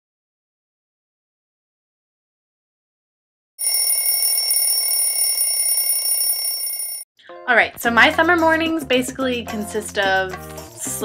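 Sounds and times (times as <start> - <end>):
alarm ringing: 3.6 - 7.0.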